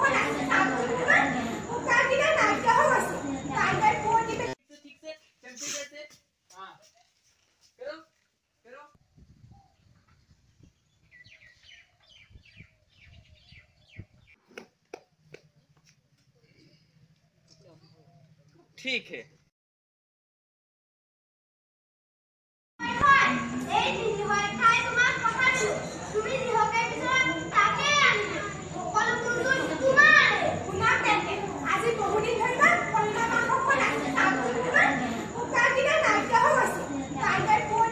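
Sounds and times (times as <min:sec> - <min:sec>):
bird chirping: 0:09.4 - 0:14.5.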